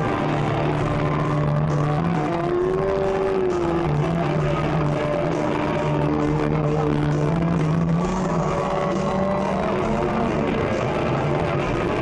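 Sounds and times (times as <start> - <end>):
steady bass note: 0.0 - 12.0.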